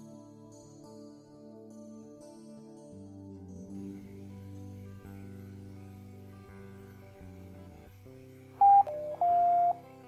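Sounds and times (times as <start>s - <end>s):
soft guitar music: 1.5s - 10.0s
electronic beeps: 8.6s - 9.8s.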